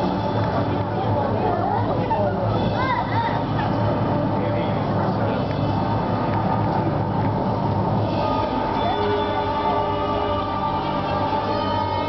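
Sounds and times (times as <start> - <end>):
film soundtrack low rumble: 0.0 - 12.0.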